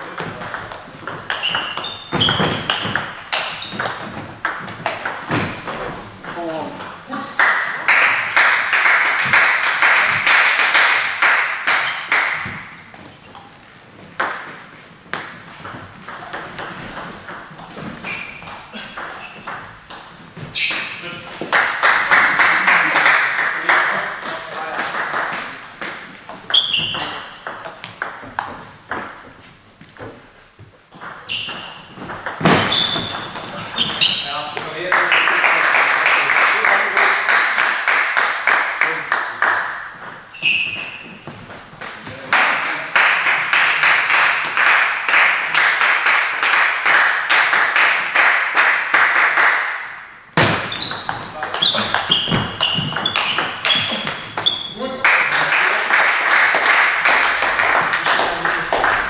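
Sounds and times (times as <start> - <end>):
shoe squeaks on floor: 1.2 - 4.2, 17.0 - 19.8, 20.4 - 21.1, 26.5 - 27.4, 31.2 - 34.6, 40.3 - 41.5, 50.4 - 55.0
applause: 7.4 - 12.4, 21.6 - 25.5, 34.9 - 39.7, 42.3 - 49.7, 55.0 - 59.0.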